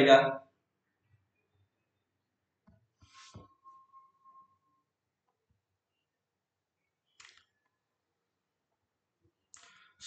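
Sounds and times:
faint clicks: 9.5 - 9.8.

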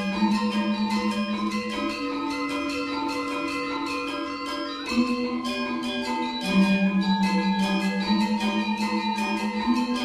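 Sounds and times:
gamelan ensemble playing: 0.0 - 10.0.

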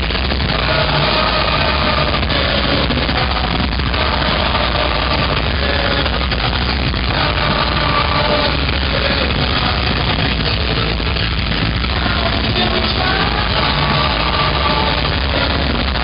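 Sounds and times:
punk rock band playing live: 0.0 - 16.0.

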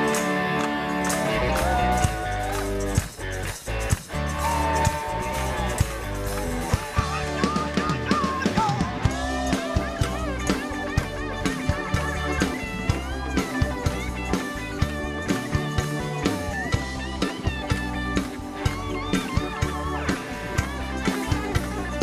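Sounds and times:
electric guitar lead: 0.0 - 22.0
rock band playing: 0.0 - 22.0.

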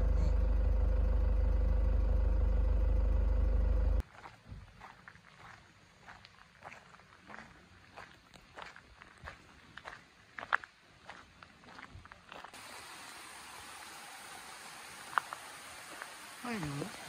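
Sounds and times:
footsteps crunching on gravel: 4.0 - 12.6
running water hiss: 12.6 - 17.0.

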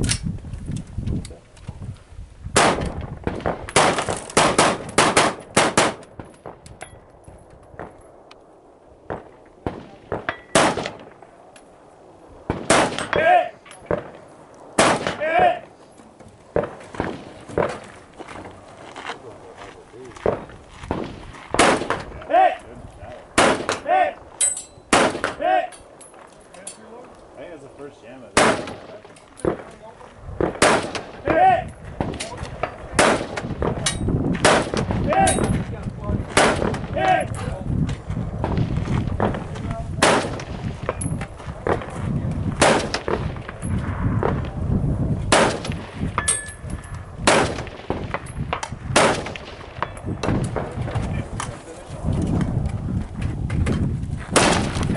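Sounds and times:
rifle shots: 2.5 - 6.6, 9.0 - 11.4, 12.4 - 15.6, 16.5 - 18.6, 20.2 - 22.2, 23.3 - 24.3, 24.9 - 26.0, 28.3 - 29.8, 30.4 - 31.4, 32.0 - 35.5, 36.3 - 37.2, 38.4 - 44.6, 45.3 - 51.1, 54.3 - 54.9.

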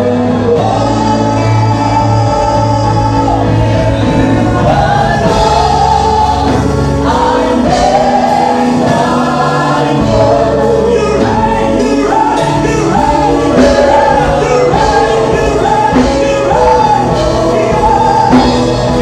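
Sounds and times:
instrumental backing with bass notes: 0.0 - 19.0
voices singing along: 0.0 - 19.0.

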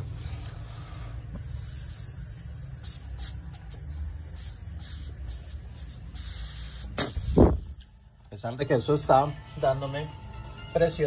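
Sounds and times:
air hissing from vent pipe: 0.0 - 7.9.

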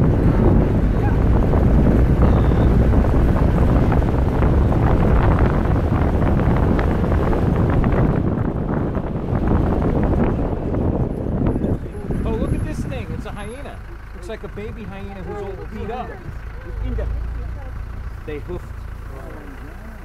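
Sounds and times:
wind buffeting microphone: 0.0 - 19.1
vehicle rattling and jolting: 0.0 - 20.0.

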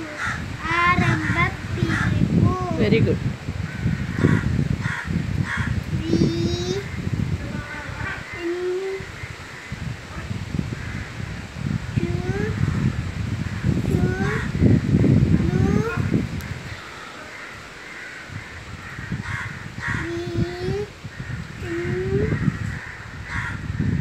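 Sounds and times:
crows cawing: 0.0 - 2.2, 3.6 - 5.8, 8.1 - 9.9, 10.7 - 11.4, 16.5 - 24.0
low rumbling noise: 0.0 - 24.0.

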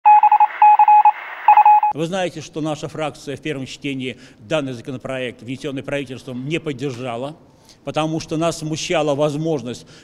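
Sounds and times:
electronic beeping: 0.0 - 1.9.

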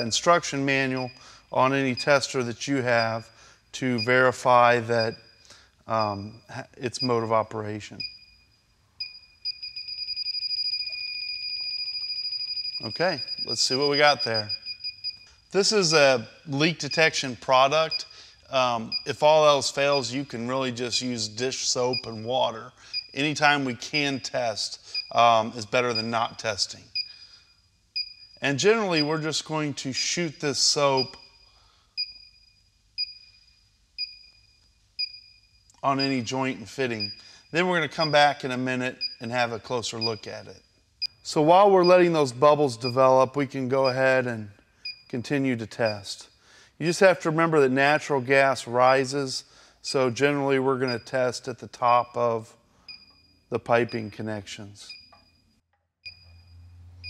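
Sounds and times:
gas detector fast beeping: 8.0 - 15.4, 18.9 - 20.1, 22.8 - 23.3, 27.0 - 27.4, 28.0 - 29.3, 30.9 - 36.3, 36.9 - 39.3, 52.9 - 54.2, 54.9 - 56.7
gas detector short high beeps: 8.0 - 15.4.

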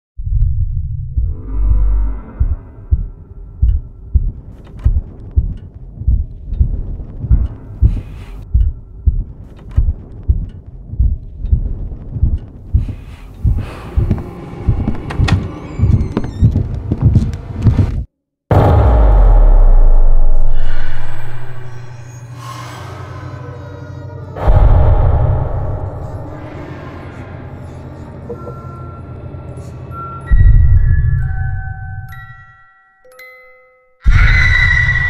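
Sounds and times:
low heartbeat-like thudding pulse: 0.2 - 21.9, 30.3 - 31.3.

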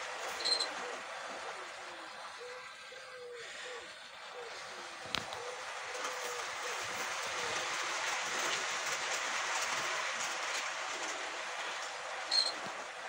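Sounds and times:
model train rattling whirr: 0.0 - 13.0
high squeak: 0.4 - 0.7, 12.3 - 12.6.

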